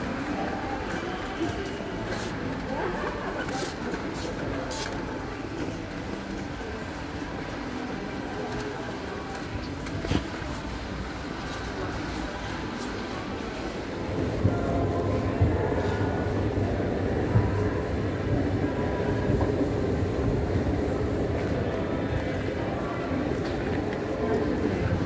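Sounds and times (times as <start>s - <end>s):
shoppers chatter: 0.0s - 25.0s.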